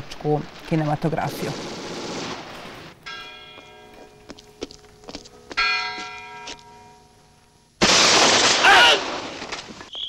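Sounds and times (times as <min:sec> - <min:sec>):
bell ringing: 0:05.6 - 0:07.0.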